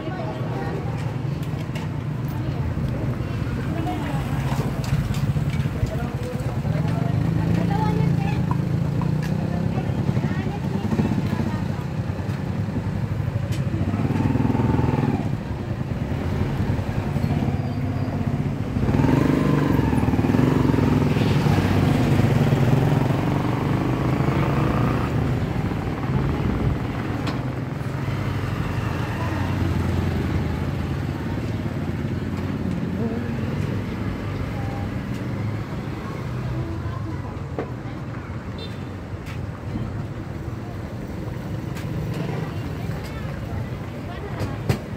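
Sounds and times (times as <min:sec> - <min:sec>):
motorcycle engines running: 0:00.0 - 0:44.9
voices talking: 0:00.0 - 0:44.9.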